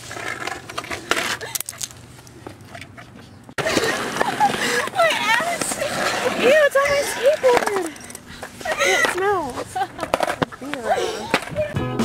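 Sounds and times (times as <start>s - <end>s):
skateboard rolling on concrete: 0.0s - 12.0s
people calling and talking: 1.1s - 12.0s
skateboard clacks: 10.0s - 11.9s.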